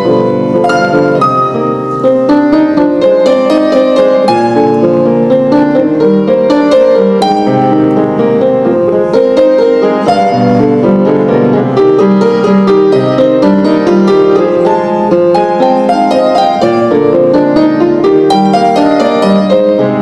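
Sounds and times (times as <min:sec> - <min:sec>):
solo grand piano: 0:00.0 - 0:20.0.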